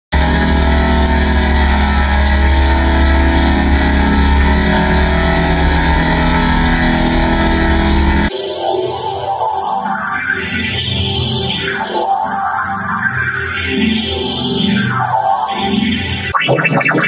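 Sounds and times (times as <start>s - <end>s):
deep hum: 0.1s - 8.3s
distorted drone of steady tones: 0.1s - 17.0s.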